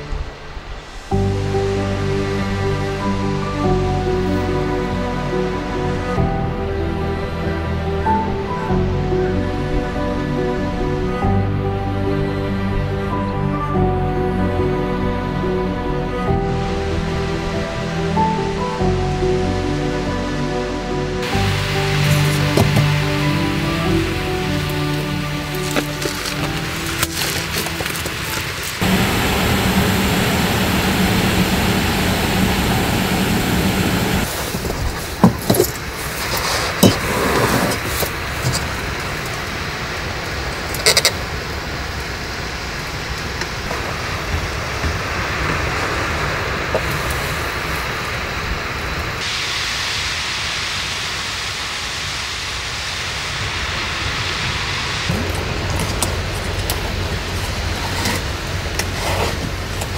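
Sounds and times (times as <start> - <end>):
background music: 0.0 - 34.3
gas stove burning: 21.2 - 59.9.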